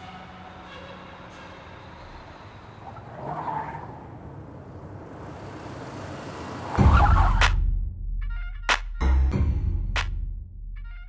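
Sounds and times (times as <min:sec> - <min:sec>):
car moving in echoing car park: 0:00.0 - 0:07.6.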